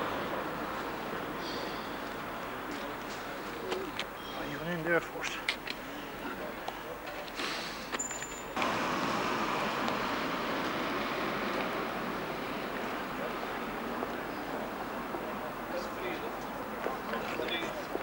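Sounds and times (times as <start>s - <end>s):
street background noise: 0.0s - 18.0s.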